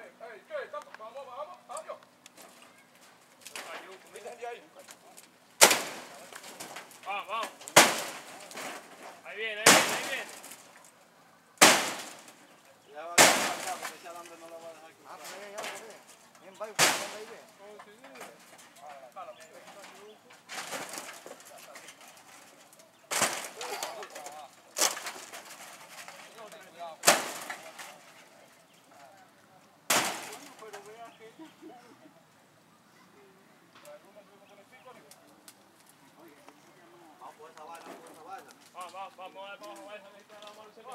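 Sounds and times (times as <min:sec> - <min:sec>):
hard blows on wood and metal sheets: 0:05.6 - 0:10.7, 0:11.6 - 0:14.2, 0:15.0 - 0:18.8, 0:19.6 - 0:24.0, 0:24.8 - 0:28.2, 0:29.9 - 0:30.8.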